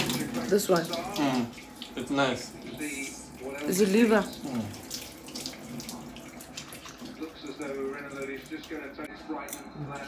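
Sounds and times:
water running from a tap: 0.0 - 9.1.

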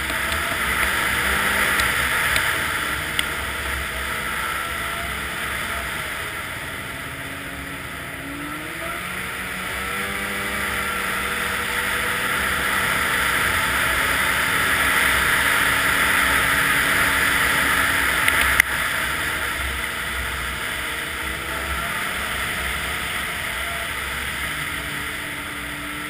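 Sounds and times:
snowmobile engine running: 0.0 - 26.0
steady rushing noise: 0.0 - 26.0.

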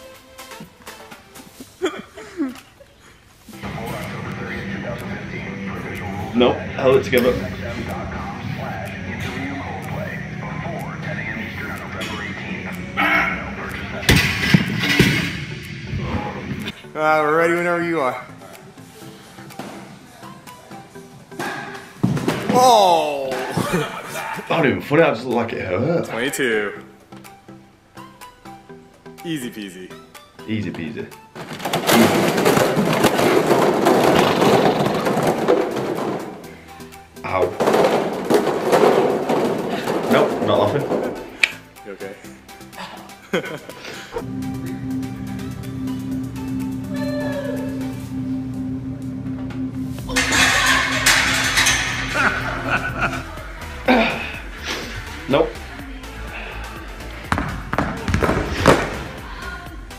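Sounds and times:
background music: 0.0 - 59.9
barbell weights crashing on floor: 31.4 - 36.4
plastic clattering: 31.4 - 36.5.

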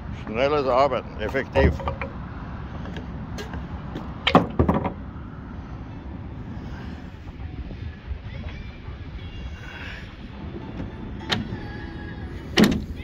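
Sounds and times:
outdoor rumble: 0.0 - 13.0
sharp knocks: 1.6 - 2.2, 4.3 - 5.0.

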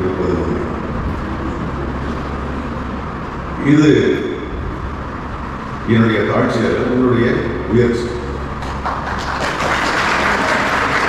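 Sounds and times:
audience applauding: 8.6 - 11.0.

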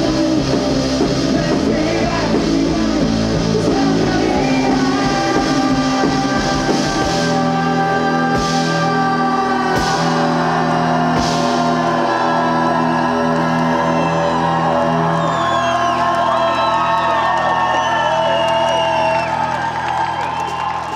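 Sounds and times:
crowd cheering and whooping: 8.8 - 20.9.

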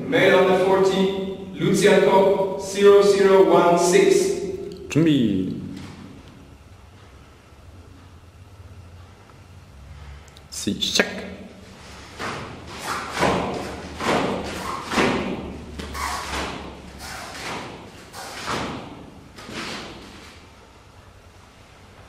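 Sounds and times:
feet thudding on foam mats: 12.0 - 20.4
uniform snapping swishes: 12.1 - 20.3.

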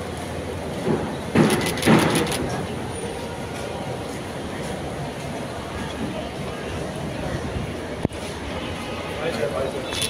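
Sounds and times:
airport concourse background noise: 0.0 - 10.0.

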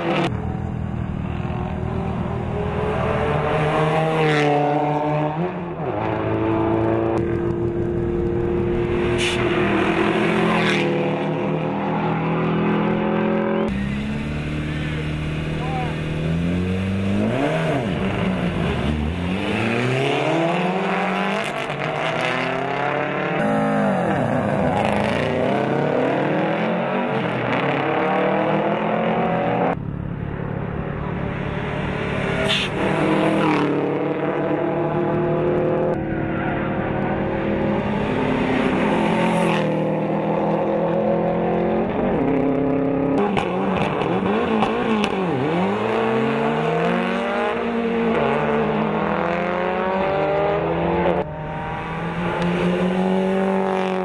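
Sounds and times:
rally car engines revving past: 0.0 - 29.8, 30.9 - 54.0.

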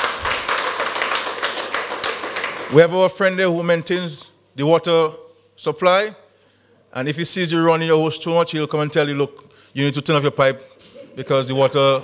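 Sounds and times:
audience clapping: 0.0 - 2.9.

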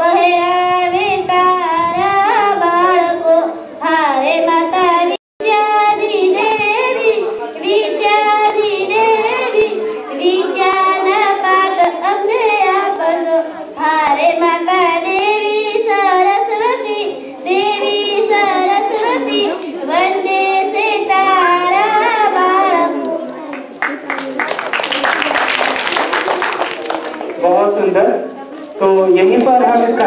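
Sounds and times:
girl singing into microphone: 0.0 - 23.5.

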